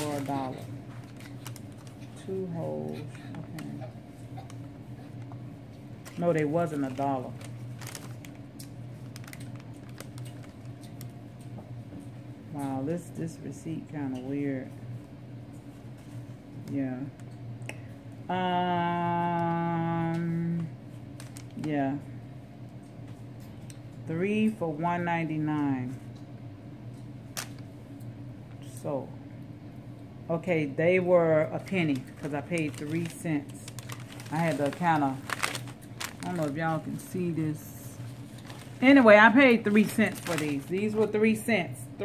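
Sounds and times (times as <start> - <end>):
paper receipt rustling: 0.0 - 3.8, 6.0 - 11.1, 31.6 - 41.5
steady low hum: 0.0 - 42.0.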